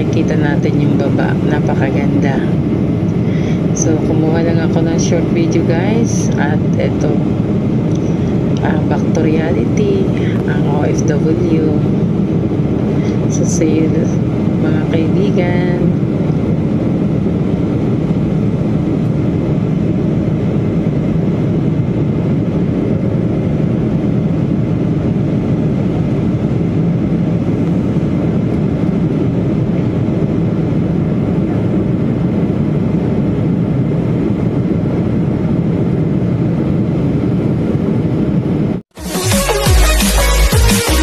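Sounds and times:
jet airliner cabin noise: 0.0s - 38.8s.

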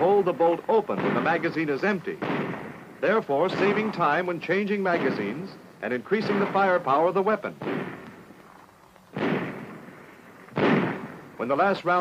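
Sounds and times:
submachine gun shot: 0.9s - 5.6s, 7.6s - 8.2s, 9.1s - 11.3s.

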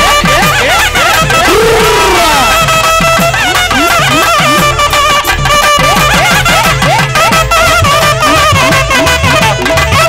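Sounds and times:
drum rhythm with bending pitch: 0.0s - 10.0s
reed horn holding a long note: 0.9s - 3.4s.

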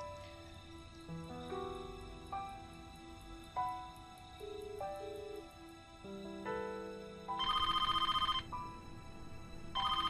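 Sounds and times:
soft background music: 0.0s - 10.0s
telephone ringing: 7.4s - 8.6s, 9.8s - 10.0s.

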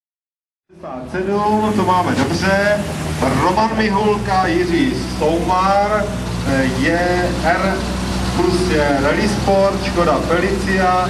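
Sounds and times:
car engine idling: 0.7s - 11.0s
man talking: 0.7s - 11.0s.

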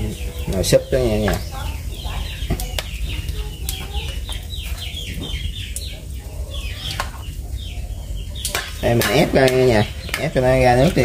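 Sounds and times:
chickens clucking and peeping: 0.0s - 11.0s.

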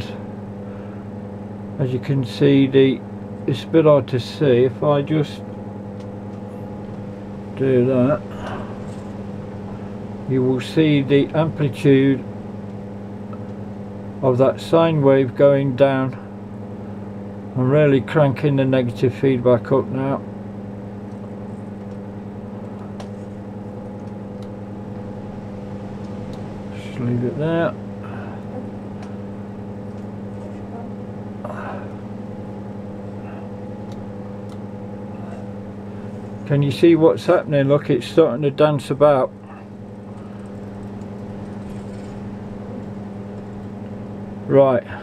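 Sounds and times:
low electrical hum: 0.0s - 45.0s.

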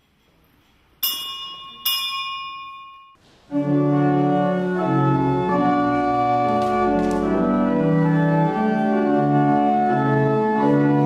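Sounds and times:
bell ringing: 1.0s - 3.2s.

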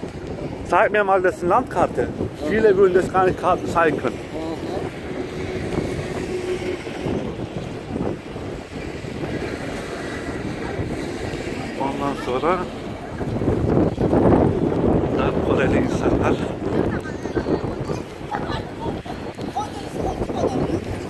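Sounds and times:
street noise: 0.0s - 21.0s
wind rumbling on microphone: 0.0s - 21.0s.

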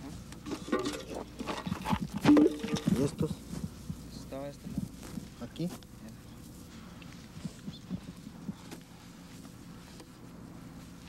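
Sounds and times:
hands patting soil: 1.2s - 11.0s.

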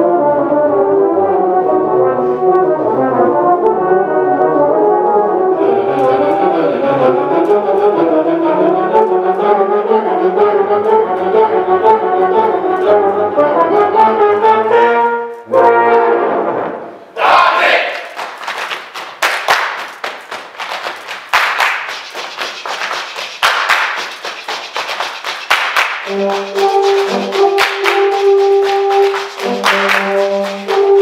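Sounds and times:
low brass ensemble chords: 0.0s - 18.0s, 26.0s - 31.0s.

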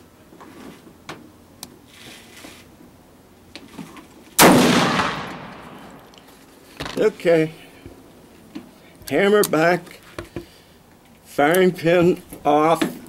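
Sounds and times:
pistol shot with echo: 4.4s - 6.1s.

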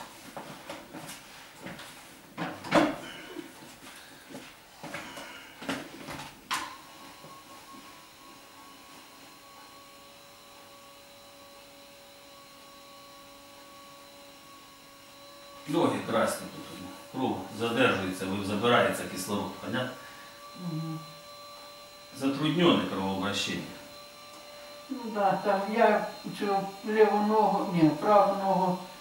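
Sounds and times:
steady electric hum: 0.0s - 29.0s.

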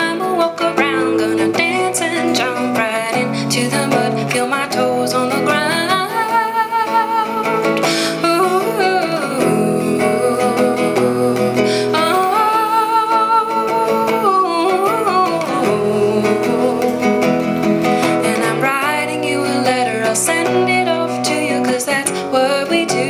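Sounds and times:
plucked acoustic guitar: 0.0s - 23.0s.

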